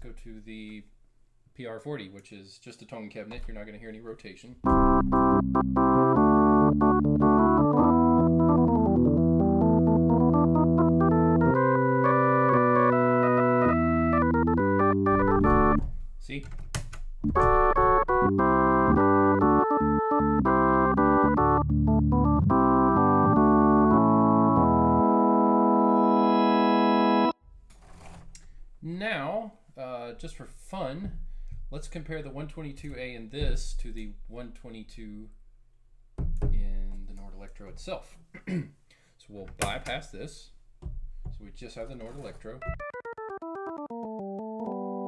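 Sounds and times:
organ sustained chords: 4.7 - 15.8, 17.3 - 27.4, 42.7 - 45.0.

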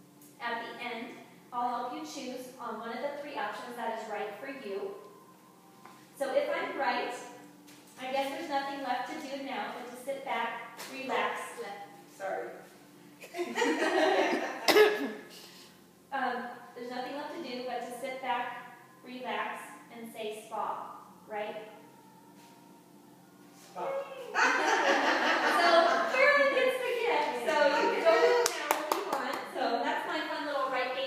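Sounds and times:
woman coughing: 14.3 - 15.4
women's voices: 25.4 - 31.0
hand claps: 28.4 - 29.5.

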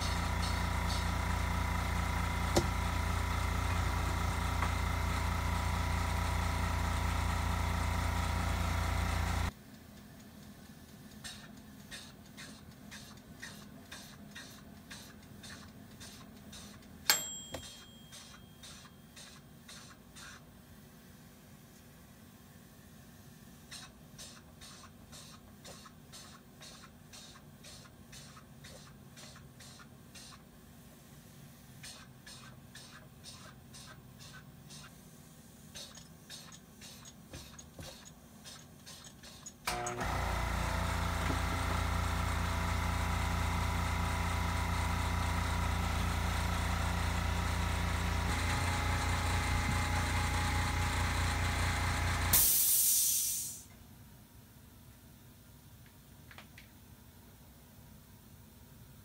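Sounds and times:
air compressor running: 0.0 - 9.6, 11.2 - 20.4, 23.0 - 53.7
short sharp air hiss: 52.3 - 53.7.

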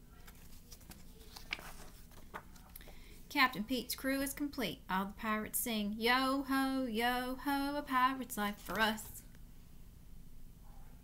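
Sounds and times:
paper pages turning: 0.1 - 3.0, 8.4 - 9.2.

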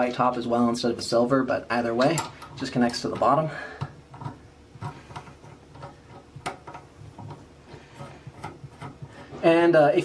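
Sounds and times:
metal plumbing fittings clicking: 1.9 - 9.4.

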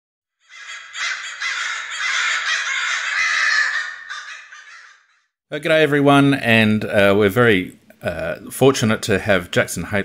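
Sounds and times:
flock of crows cawing: 0.4 - 5.4.

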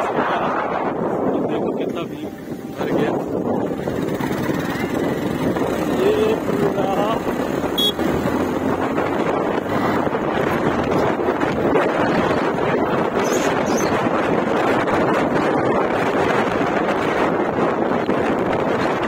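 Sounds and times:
wind rushing over microphone: 0.0 - 19.0
motorcycle engine running: 3.1 - 17.8.

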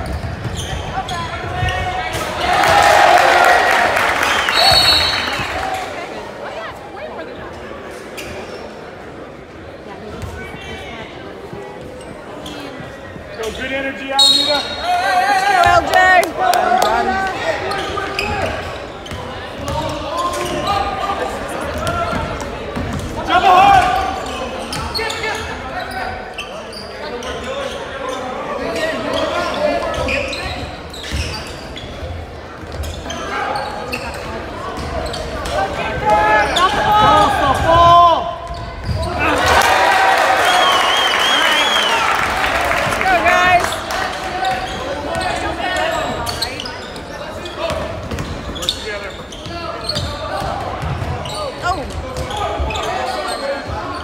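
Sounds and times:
people shouting in gym: 35.4 - 40.4.

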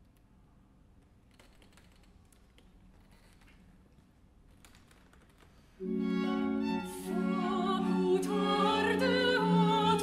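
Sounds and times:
faint clicks and rustles: 0.9 - 5.8.

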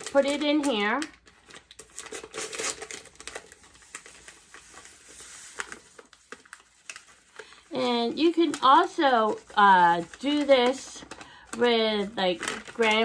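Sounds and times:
plastic pouch crinkling: 0.0 - 13.0.

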